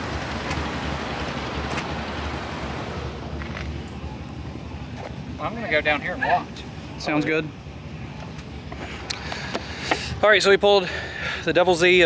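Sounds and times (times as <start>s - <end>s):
engines rumbling: 0.0s - 12.0s.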